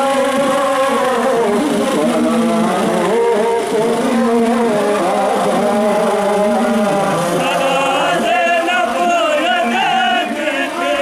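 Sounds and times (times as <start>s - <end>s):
men chanting in unison: 0.0s - 11.0s.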